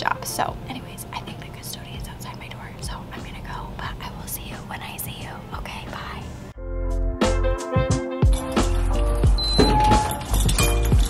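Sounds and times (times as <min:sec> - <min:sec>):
woman whispering: 0:00.7 - 0:06.4.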